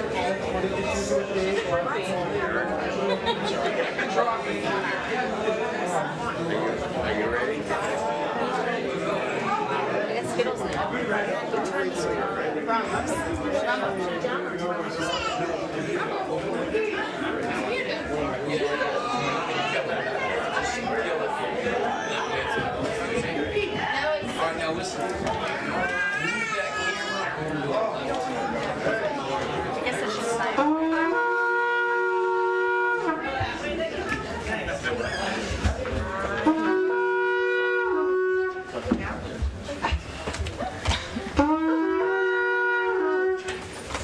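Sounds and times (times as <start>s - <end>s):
many people talking at once: 0.0s - 44.0s
voices: 0.0s - 44.0s
horn-like blasts: 30.6s - 33.4s, 36.4s - 38.8s, 41.4s - 43.7s.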